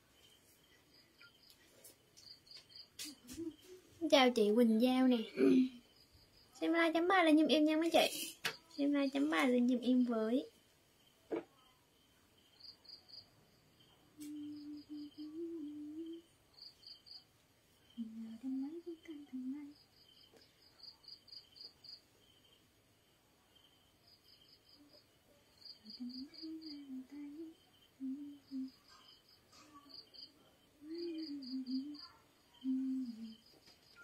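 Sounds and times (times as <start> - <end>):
faint insect chirping: 0.0 - 34.0
woman humming softly: 14.1 - 16.3, 18.0 - 19.8, 25.8 - 30.0, 30.8 - 33.6.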